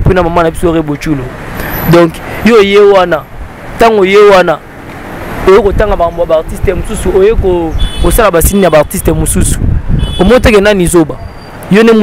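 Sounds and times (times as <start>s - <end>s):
person talking: 5.4s - 9.6s, 10.2s - 12.0s.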